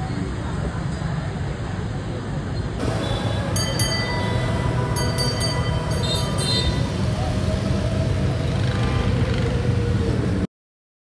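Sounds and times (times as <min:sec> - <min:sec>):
vehicle rumble: 0:00.0 - 0:10.5.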